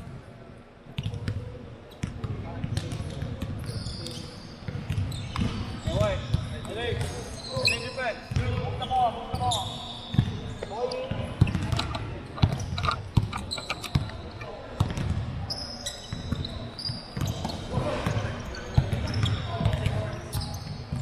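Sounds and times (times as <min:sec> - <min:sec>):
basketball bouncing: 0:11.4 - 0:14.2, 0:14.8 - 0:15.3
shoes squeaking on hardwood: 0:11.4 - 0:14.5.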